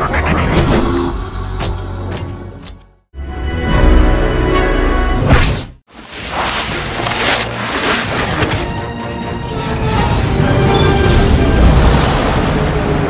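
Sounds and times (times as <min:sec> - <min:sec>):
dramatic film score music: 0:00.0 - 0:05.8, 0:06.5 - 0:13.0.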